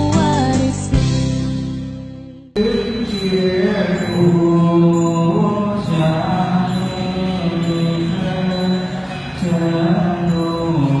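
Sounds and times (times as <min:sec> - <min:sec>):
musical backing: 0:00.0 - 0:04.7
mantra chanted on held notes: 0:02.6 - 0:11.0.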